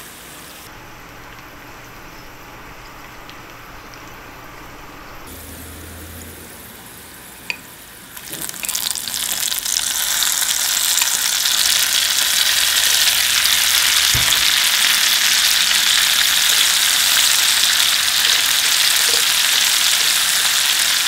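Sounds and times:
shrimp sizzling in hot oil: 0.1s - 5.7s, 8.2s - 21.0s
dull knock: 14.1s - 14.6s.

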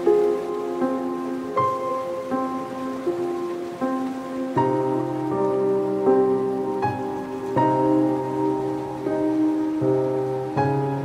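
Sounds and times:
gentle solo piano melody: 0.0s - 11.0s
ocean surf hiss: 0.0s - 11.0s.

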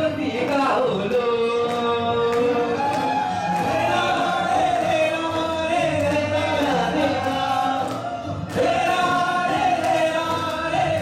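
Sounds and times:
two men singing a duet: 0.0s - 11.0s.

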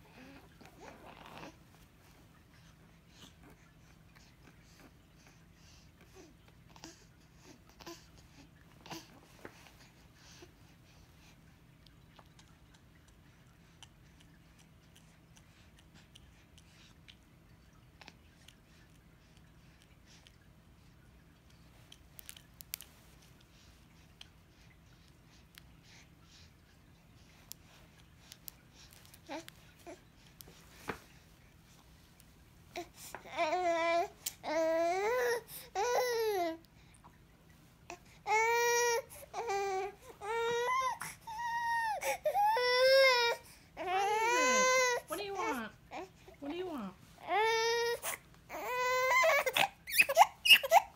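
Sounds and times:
small wet clicks: 11.8s - 25.8s
baby crying: 38.3s - 46.1s, 47.2s - 50.9s.

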